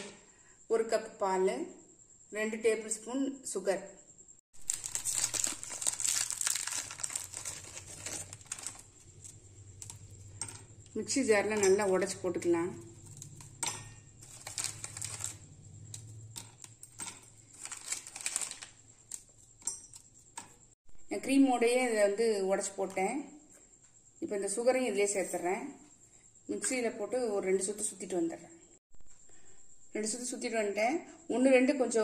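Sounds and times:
plastic wrapper crinkling and tearing: 4.6 - 10.0, 14.2 - 15.4, 17.5 - 18.8.

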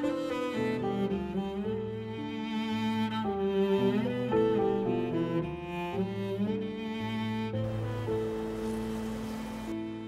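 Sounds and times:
slow bowed strings score: 0.0 - 10.0.

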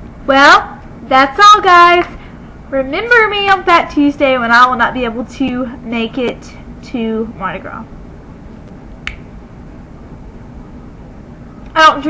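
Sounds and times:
low room noise: 0.0 - 12.0.

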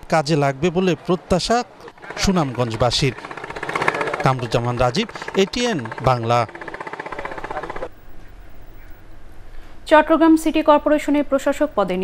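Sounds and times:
motorboat engine knocking: 0.6 - 7.9.

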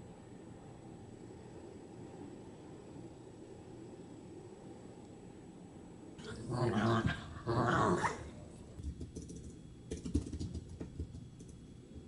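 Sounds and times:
dogs play-growling: 6.2 - 8.4.

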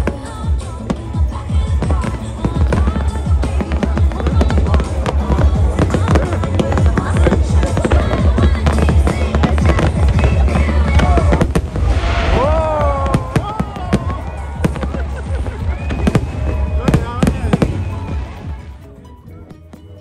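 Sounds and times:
fireworks bangs and crackling: 0.0 - 18.7
deep rumble: 9.2 - 15.4.

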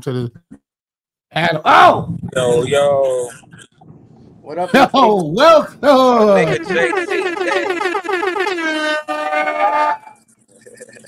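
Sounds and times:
air horn blare: 6.5 - 10.2.

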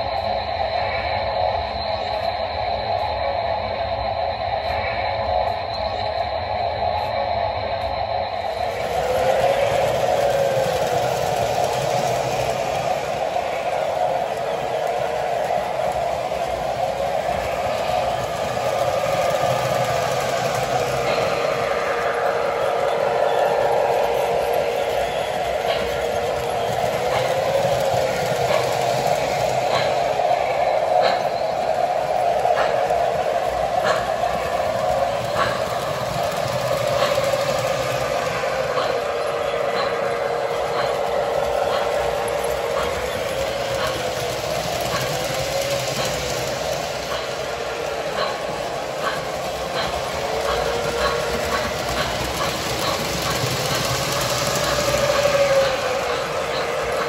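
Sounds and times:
model steam train sound effects: 0.0 - 57.0
model train running on track: 0.0 - 57.0.

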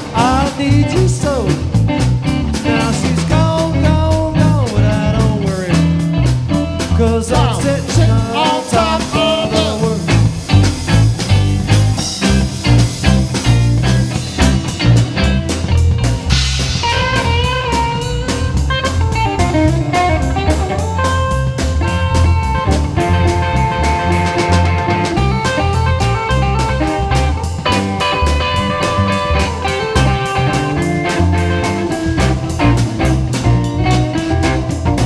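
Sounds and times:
blues band playing: 0.0 - 35.0
lead guitar bending notes: 0.0 - 35.0.

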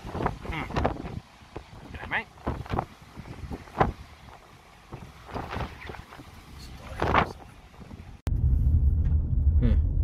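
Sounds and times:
strong wind gusting on microphone: 0.0 - 10.0
low rumble: 6.4 - 10.0.

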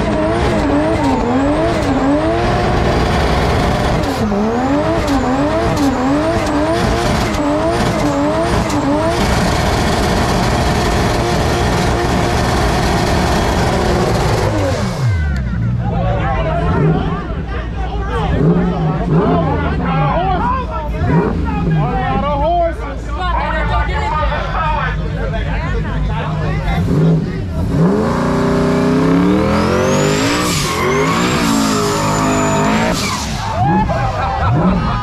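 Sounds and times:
car engine revving: 0.0 - 22.4, 26.1 - 35.0
crowd chatter and shouting: 0.0 - 35.0
tyres squealing: 29.2 - 34.2.

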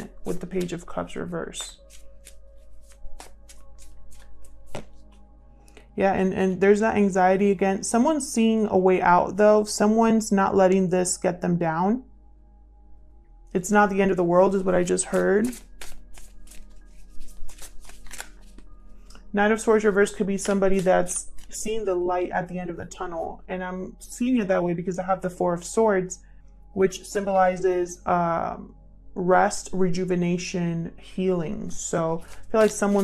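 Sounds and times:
soft background music: 0.0 - 33.0
cards being shuffled: 0.2 - 5.3, 14.5 - 18.7, 19.8 - 21.8, 31.8 - 33.0.

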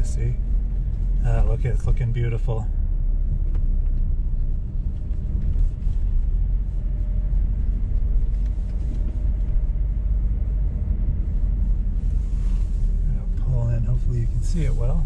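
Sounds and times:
car engine and tyre rumble: 0.0 - 15.0.

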